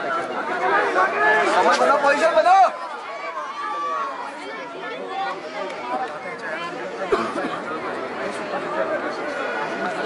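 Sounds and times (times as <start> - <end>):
babble of overlapping voices: 0.0 - 10.0.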